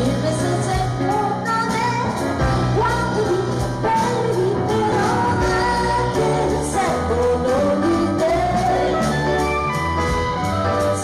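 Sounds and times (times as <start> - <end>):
band accompaniment: 0.0 - 11.0
woman singing a slow melody: 2.8 - 9.3.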